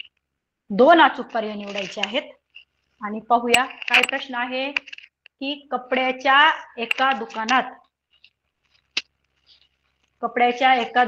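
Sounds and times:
woman speaking: 0:00.7 - 0:02.4, 0:03.0 - 0:04.8, 0:05.4 - 0:07.9, 0:10.2 - 0:11.0.

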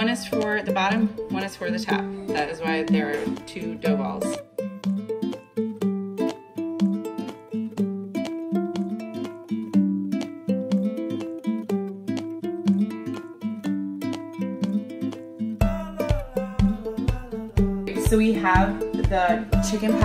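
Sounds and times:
plucked string tune: 0:00.0 - 0:20.0.

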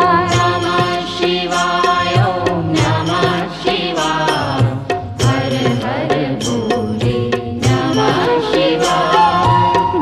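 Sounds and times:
devotional singing: 0:00.0 - 0:10.0
steady drum beat: 0:00.0 - 0:10.0.

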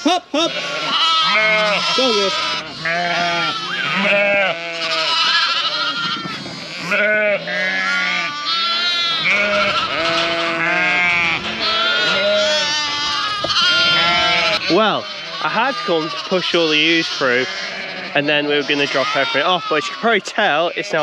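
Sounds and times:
sheep and lambs bleating: 0:00.0 - 0:21.0.

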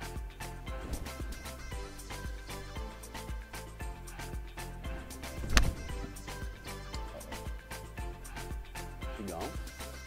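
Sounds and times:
background music with steady beat: 0:00.0 - 0:10.0
golf club striking ball: 0:05.3 - 0:06.2.

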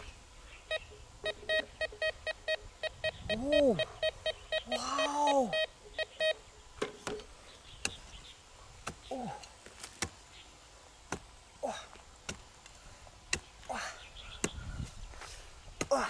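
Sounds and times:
metal detector beeping rapidly: 0:00.7 - 0:06.4
man exclaiming: 0:03.4 - 0:03.9, 0:04.7 - 0:05.7.

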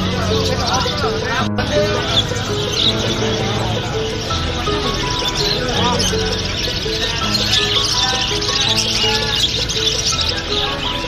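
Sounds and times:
background music with held notes: 0:00.0 - 0:11.0
small parrots chirping: 0:00.0 - 0:11.0.

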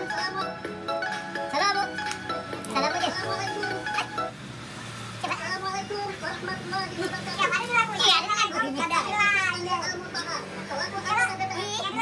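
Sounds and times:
person talking or singing: 0:01.5 - 0:04.1, 0:05.2 - 0:12.0.

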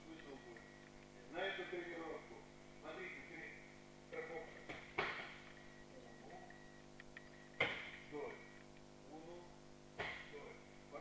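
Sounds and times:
faint steady high whine: 0:00.0 - 0:11.0.

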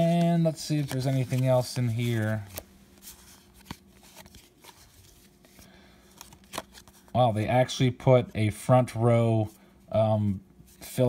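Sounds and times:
trading cards rustling and sliding: 0:00.0 - 0:07.2
faint steady hum: 0:00.0 - 0:11.0.

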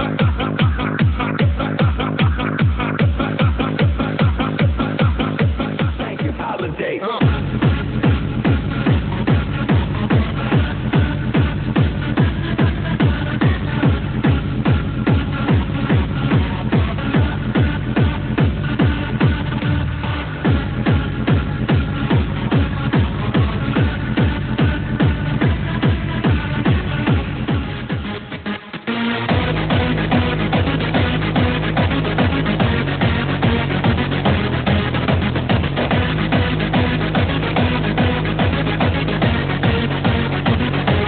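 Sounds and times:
distorted kick drum: 0:00.0 - 0:28.4, 0:29.2 - 0:41.0.

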